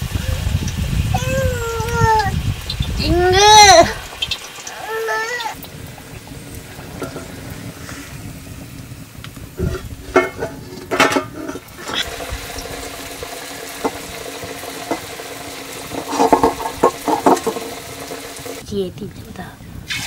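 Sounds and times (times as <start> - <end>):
flatbread sizzling in hot oil: 0.0 - 18.8, 19.8 - 20.0.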